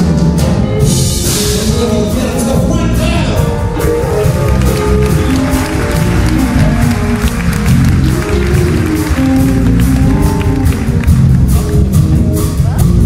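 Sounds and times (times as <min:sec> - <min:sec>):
drum kit: 0:00.0 - 0:13.0
electric bass: 0:00.0 - 0:13.0
electric guitars: 0:00.0 - 0:13.0
keyboards: 0:00.0 - 0:13.0
trumpet: 0:00.8 - 0:11.8
saxophone: 0:03.6 - 0:13.0.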